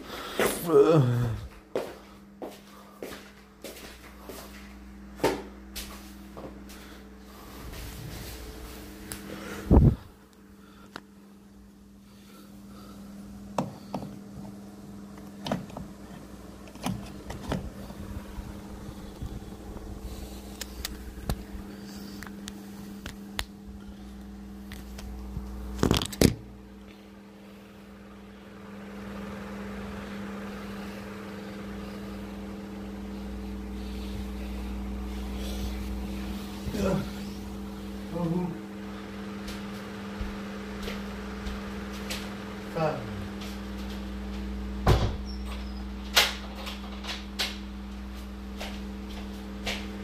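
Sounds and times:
low machine hum: 0.0s - 50.0s.

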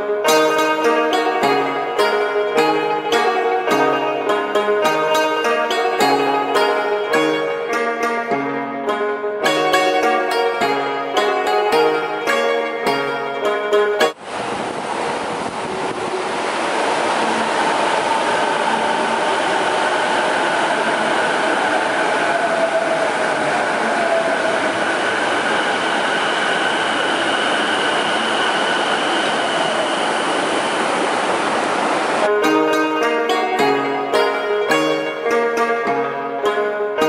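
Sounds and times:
subway train running: 0.0s - 37.0s.

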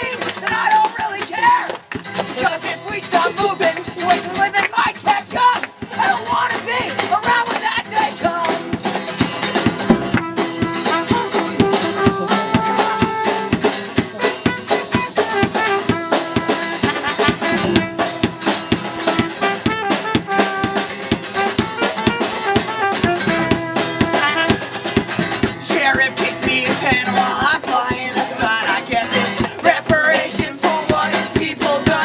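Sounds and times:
strummed acoustic guitar: 0.0s - 32.0s
person singing: 2.3s - 8.8s, 10.8s - 15.3s, 25.6s - 32.0s
fast drum hits: 8.6s - 32.0s
trumpet: 9.8s - 25.5s.

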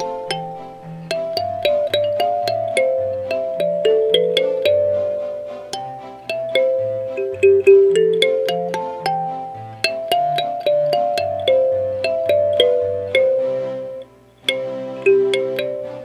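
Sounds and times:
kalimba melody: 0.0s - 16.0s.

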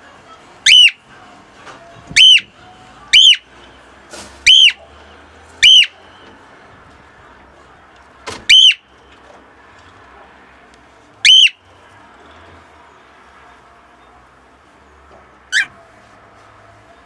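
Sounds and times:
cockatiel calling: 0.6s - 1.0s, 2.2s - 2.5s, 3.1s - 3.4s, 4.4s - 4.8s, 5.6s - 6.0s, 8.5s - 8.8s, 11.2s - 11.6s, 15.5s - 15.8s.

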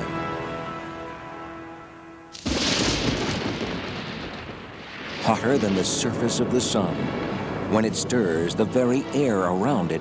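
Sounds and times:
held music chord: 0.0s - 2.3s
thunderclap rumbling: 2.4s - 8.8s.

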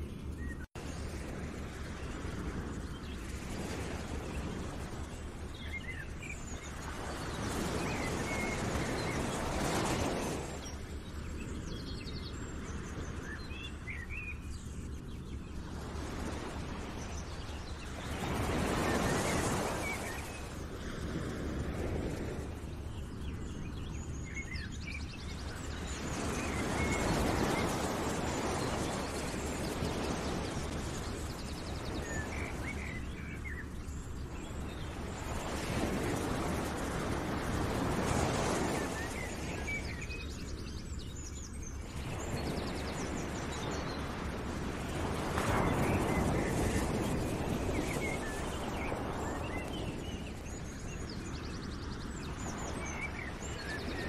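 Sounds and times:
small birds chirping: 1.9s - 21.3s.

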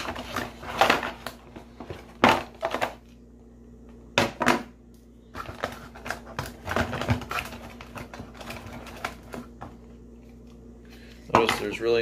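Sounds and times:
man speaking: 11.3s - 12.0s.

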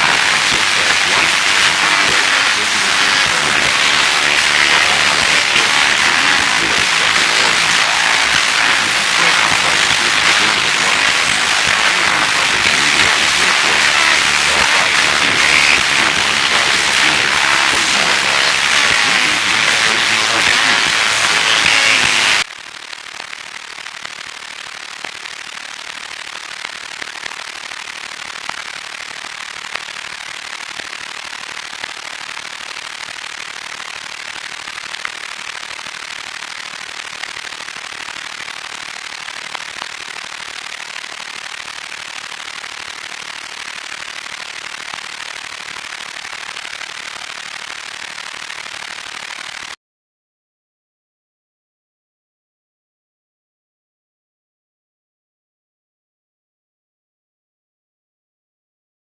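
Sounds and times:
tv static hiss: 0.0s - 49.7s
rough tv noise: 0.0s - 49.8s.

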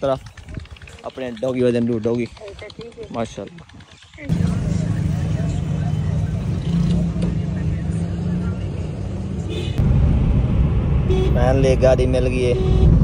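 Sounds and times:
car engine and road noise in cabin: 4.3s - 13.0s.

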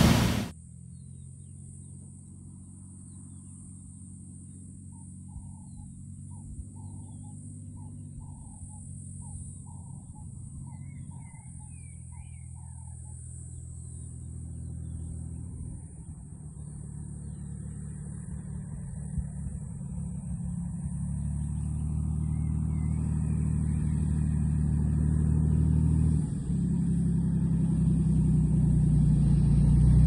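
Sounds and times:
steady high hiss: 0.0s - 0.5s
distant light aircraft engine droning: 0.0s - 30.0s.

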